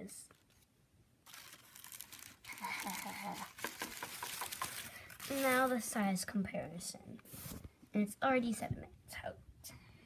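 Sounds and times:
tissue paper crinkling: 0.3s - 5.9s.

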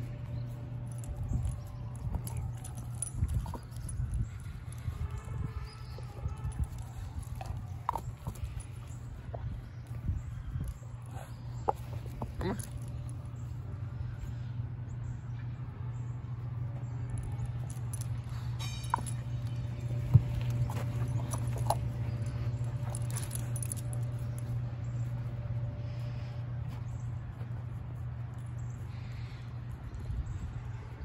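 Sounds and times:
dog paws on dry grass: 0.0s - 14.0s, 16.6s - 30.9s
steady low hum: 0.0s - 31.0s
steady low rumble: 0.0s - 31.0s.

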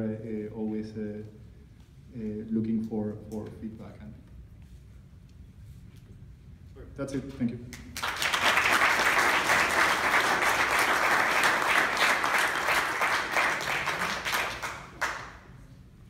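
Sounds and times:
audience applauding: 7.8s - 15.4s.

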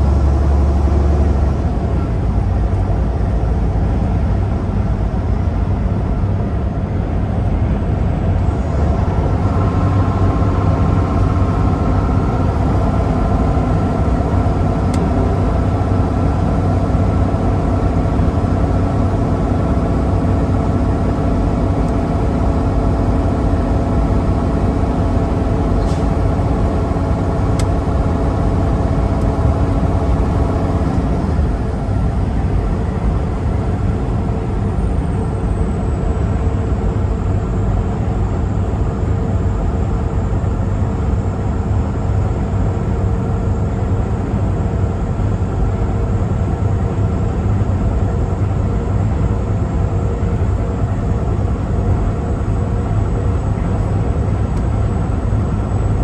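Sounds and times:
road noise: 0.0s - 56.0s
truck engine drone: 0.0s - 56.0s.

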